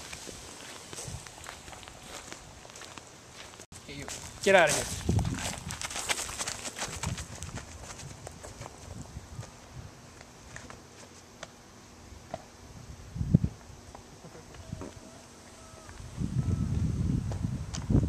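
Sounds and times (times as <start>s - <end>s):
running footsteps on gravel: 0.0s - 9.6s.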